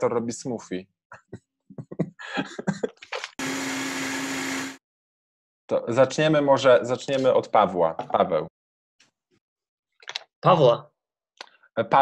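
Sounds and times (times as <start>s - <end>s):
blender whirring: 3.4s - 4.8s.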